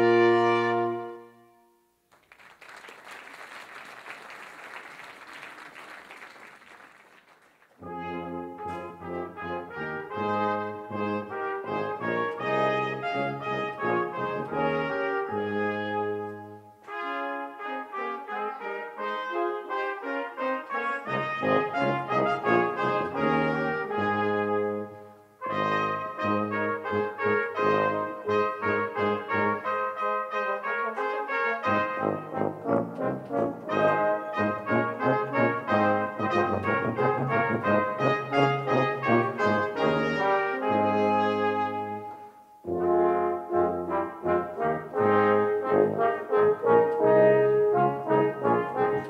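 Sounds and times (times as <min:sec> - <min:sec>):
brass quintet playing: 0:00.0 - 0:01.7, 0:07.8 - 0:49.0.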